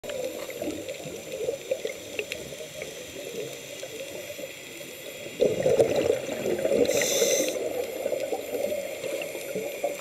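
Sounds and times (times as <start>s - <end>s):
small clicks and pops: 0.0s - 4.8s
underwater bubbling and gurgling: 0.0s - 10.0s.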